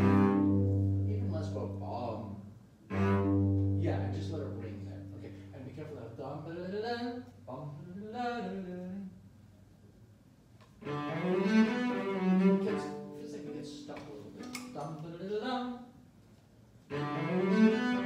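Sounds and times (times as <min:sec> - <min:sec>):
bowed cello: 0:00.0 - 0:05.8, 0:10.8 - 0:14.5, 0:16.9 - 0:18.0.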